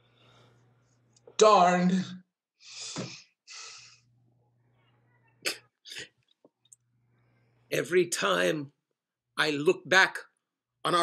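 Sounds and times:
person sneeze-like bursts of breath: 0:02.7 - 0:03.9.

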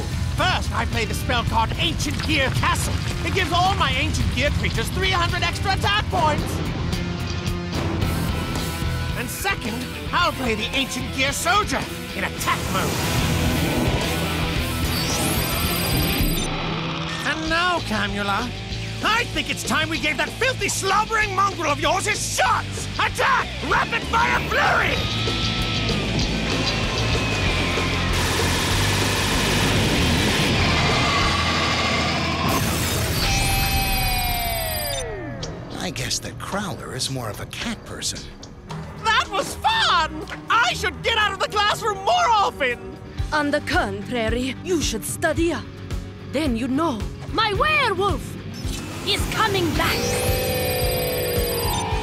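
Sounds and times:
dramatic background music: 0:00.0 - 0:52.0
electronic hum falling in pitch: 0:49.0 - 0:52.0.

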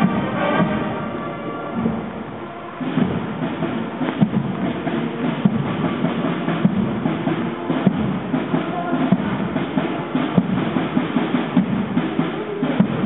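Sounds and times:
drums playing marching beat: 0:00.0 - 0:13.0
marching band brass tune: 0:00.0 - 0:13.0.

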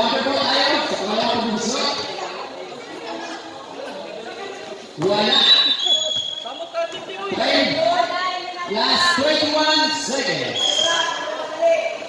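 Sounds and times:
voices calling out and shouting: 0:00.0 - 0:12.0.

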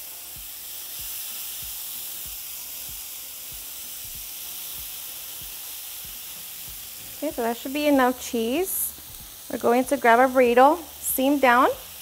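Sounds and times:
cheese sizzling on a hot griddle: 0:00.0 - 0:12.0.

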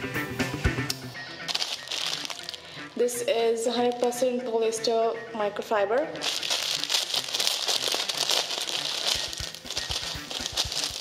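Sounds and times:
plastic packet crinkling: 0:01.5 - 0:03.0, 0:03.8 - 0:04.2, 0:06.0 - 0:11.0.

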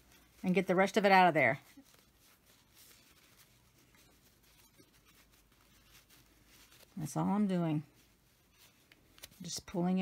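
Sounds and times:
fabric rustling and scratching: 0:00.0 - 0:10.0.

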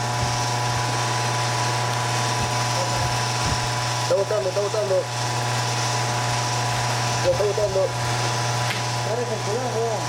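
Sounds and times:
machinery humming: 0:00.0 - 0:10.0.

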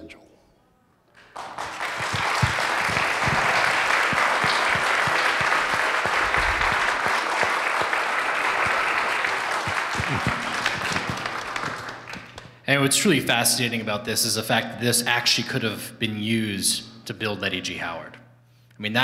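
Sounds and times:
audience applauding: 0:01.2 - 0:12.6.

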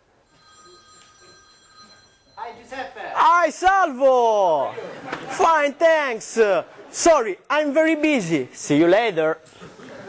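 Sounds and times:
mobile phone ringing: 0:00.2 - 0:02.7.

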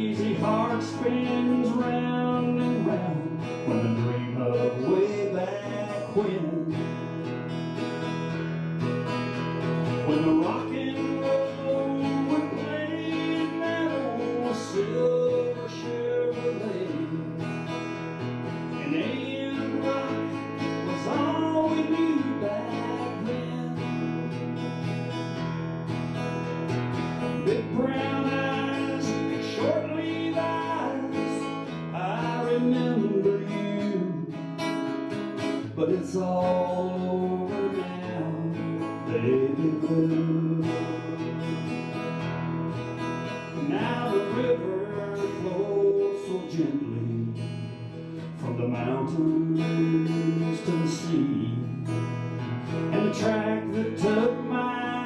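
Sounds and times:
guitar strumming chords: 0:00.0 - 0:55.0
sliding guitar lead melody: 0:00.0 - 0:55.0.

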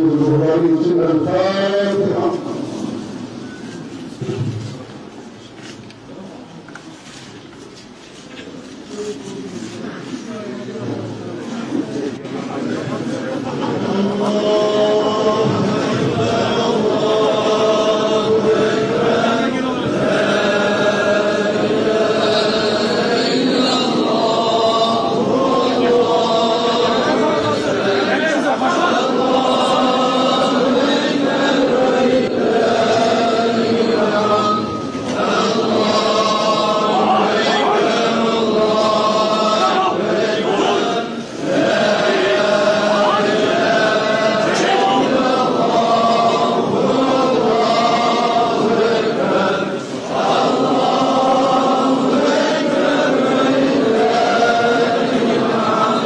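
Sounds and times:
crowd of men chanting: 0:12.8 - 0:56.0.

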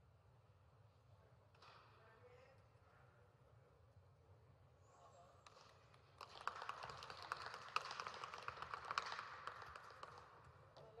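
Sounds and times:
people clapping: 0:06.2 - 0:10.6.

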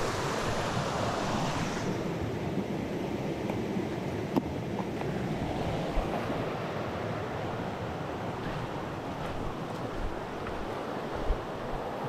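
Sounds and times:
river water running: 0:00.0 - 0:12.0.

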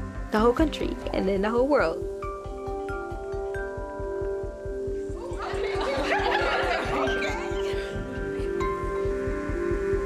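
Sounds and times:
background music with steady beat: 0:00.0 - 0:10.0
young women laughing: 0:05.3 - 0:08.2.

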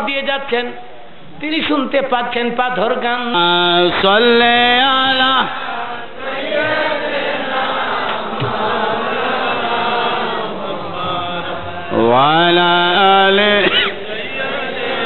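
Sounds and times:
man chanting over loudspeaker: 0:00.0 - 0:05.6, 0:10.8 - 0:14.9
crowd chanting together: 0:03.8 - 0:15.0.

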